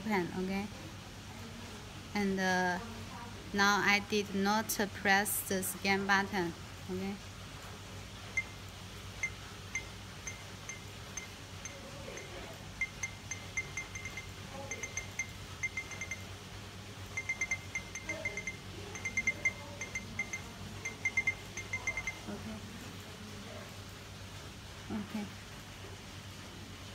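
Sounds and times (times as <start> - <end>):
barcode scanner beeping: 9.2 - 16.3, 17.1 - 22.4.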